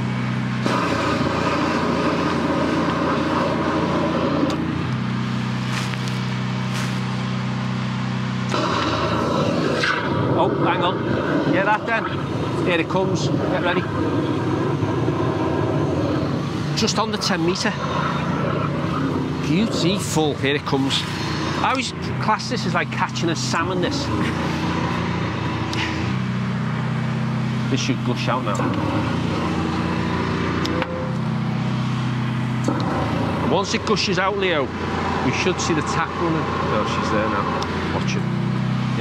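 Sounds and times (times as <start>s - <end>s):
engine and pump running: 0.0s - 39.0s.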